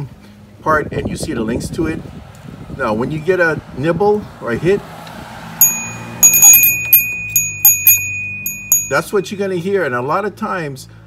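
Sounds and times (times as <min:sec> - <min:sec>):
rod bell jingling: 0:05.6 - 0:09.3.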